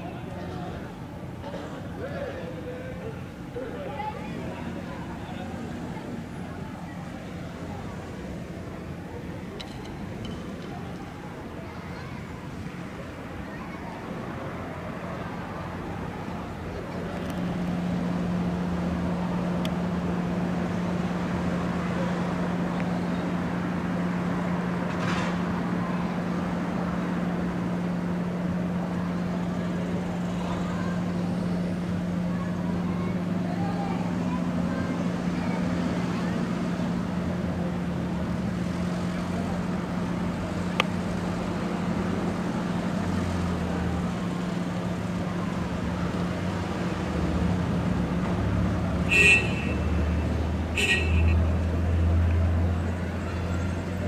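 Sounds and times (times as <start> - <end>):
road traffic hum: 0.0 - 54.0
car horn toots: 49.1 - 50.0, 50.8 - 51.4.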